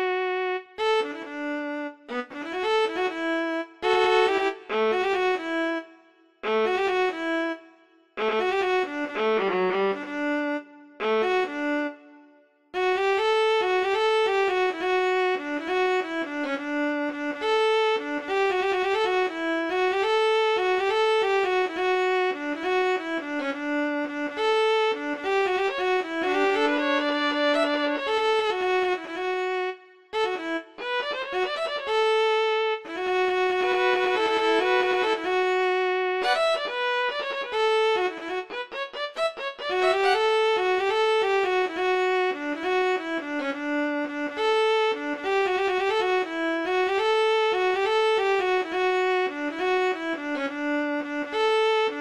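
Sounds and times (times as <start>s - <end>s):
solo bowed string melody: 0.0s - 52.0s.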